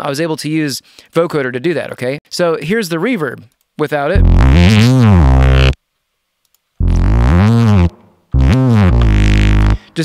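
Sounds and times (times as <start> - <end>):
swooping synth bass notes: 4.2 - 5.8, 6.8 - 9.8.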